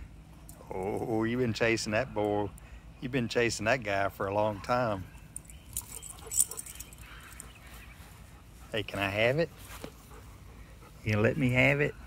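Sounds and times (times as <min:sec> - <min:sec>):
soft rustling: 0:05.4 - 0:11.0.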